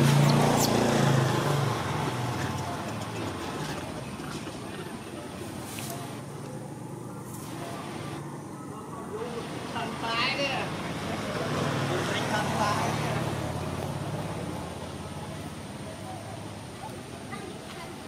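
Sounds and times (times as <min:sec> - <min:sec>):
motor vehicle passing: 0:00.0 - 0:18.0.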